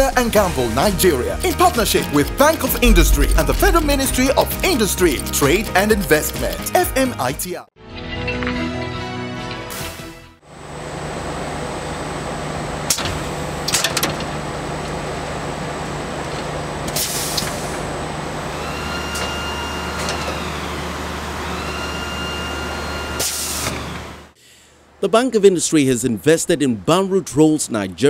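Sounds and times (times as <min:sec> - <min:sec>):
rising and falling whine: 0:02.8 - 0:04.4
machinery humming: 0:02.8 - 0:04.5.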